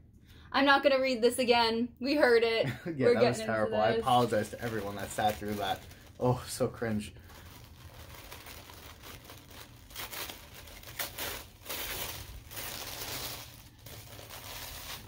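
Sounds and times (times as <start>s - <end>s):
paper crinkling and rustling: 4.0s - 15.0s.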